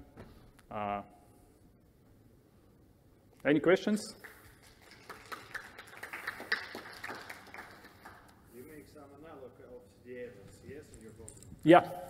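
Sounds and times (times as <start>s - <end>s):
sparse applause: 4.2s - 8.3s.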